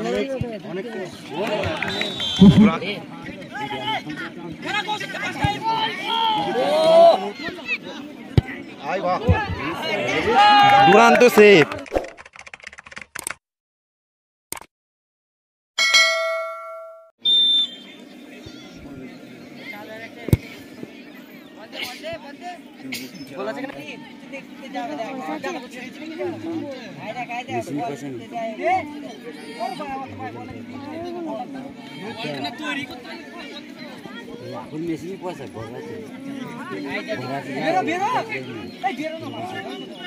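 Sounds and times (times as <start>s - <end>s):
people talking and calling out: 0.0s - 12.1s, 17.6s - 40.0s
bright metallic bell ding: 15.8s - 17.1s.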